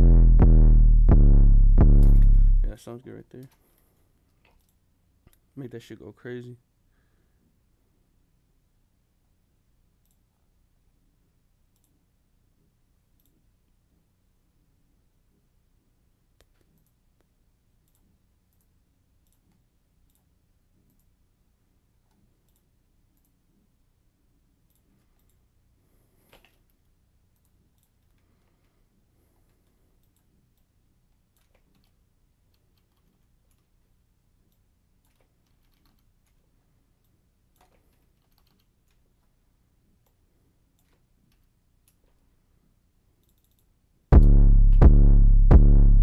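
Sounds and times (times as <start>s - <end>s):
low steady hum: 0.0s - 2.8s, 44.1s - 46.0s
computer mouse clicks: 10.0s - 10.3s, 11.7s - 12.0s, 13.1s - 13.5s, 16.4s - 21.2s, 22.1s - 23.4s, 24.6s - 25.5s, 26.3s - 28.5s, 29.5s - 33.8s, 34.4s - 39.1s, 40.0s - 42.2s, 43.2s - 43.8s
mouse and keyboard clicks: 31.3s - 33.7s, 34.5s - 36.4s, 37.5s - 39.0s.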